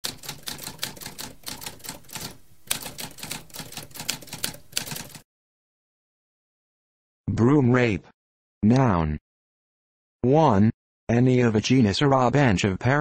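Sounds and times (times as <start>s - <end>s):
typewriter typing: 0.0s - 5.2s.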